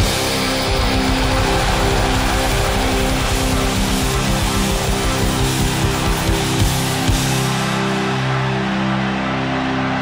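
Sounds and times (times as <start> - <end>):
fast drums: 0.0 - 8.0
distorted electric guitars: 0.0 - 9.8.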